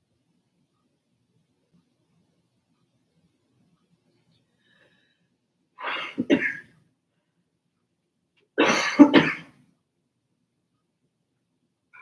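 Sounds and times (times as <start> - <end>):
person coughing: 5.8 - 6.7, 8.6 - 9.6.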